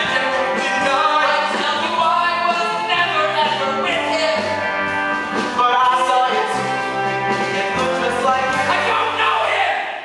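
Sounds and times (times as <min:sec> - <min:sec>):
live band playing held chords: 0:00.0 - 0:09.6.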